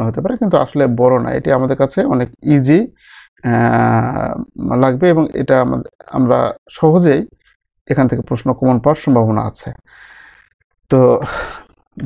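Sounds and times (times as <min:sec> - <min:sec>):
man breathing in: 0:03.0 - 0:03.4, 0:09.9 - 0:10.6.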